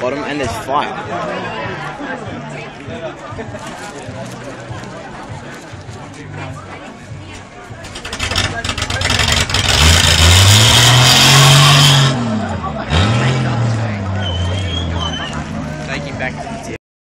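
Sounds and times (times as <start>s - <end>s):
tyre screech: 7.9s - 12.3s, 14.1s - 15.6s
engine revving hard: 7.9s - 15.7s.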